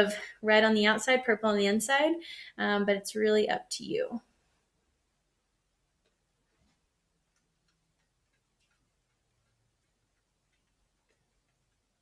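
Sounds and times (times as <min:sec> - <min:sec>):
paintbrush dabbing on paper: 0:05.7 - 0:12.0.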